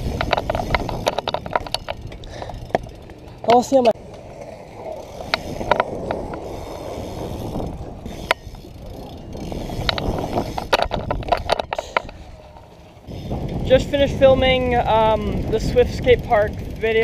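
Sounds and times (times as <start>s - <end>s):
bike clicks and knocks: 0.0s - 17.0s
bike tyres rolling on concrete: 0.0s - 17.0s.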